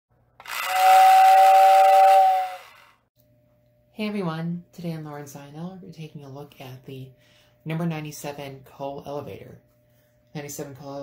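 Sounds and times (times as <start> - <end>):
steam train whistle: 0.4 - 2.9.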